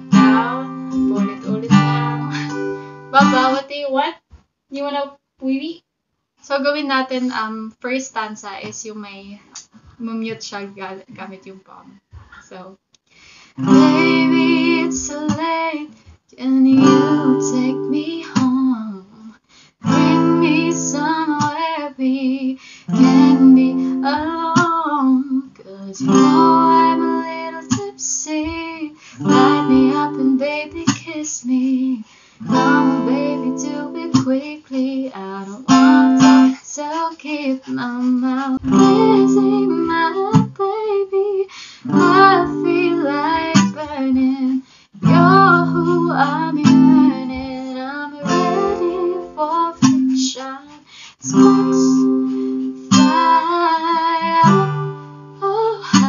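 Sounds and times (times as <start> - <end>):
acoustic guitar strumming: 0.0 - 3.6, 13.6 - 15.4, 16.8 - 18.5, 19.8 - 21.5, 22.9 - 24.8, 26.0 - 27.9, 29.2 - 31.0, 32.4 - 34.4, 35.7 - 36.7, 38.0 - 40.6, 41.9 - 44.2, 45.0 - 50.3, 51.3 - 56.0
woman singing: 0.0 - 3.8, 13.6 - 56.0.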